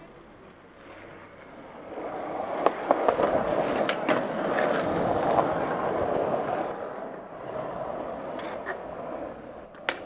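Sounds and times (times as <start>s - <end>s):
skateboard wheels rolling on pavement: 0.0s - 10.0s.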